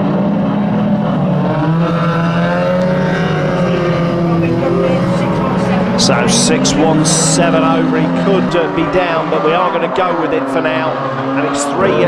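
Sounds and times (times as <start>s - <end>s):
race car engines revving: 0.0s - 12.0s.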